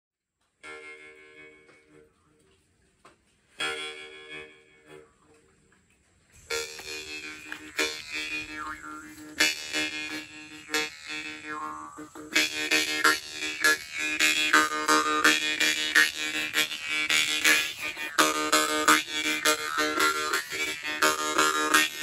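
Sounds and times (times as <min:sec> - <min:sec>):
jaw harp playing: 0:06.4 - 0:22.0.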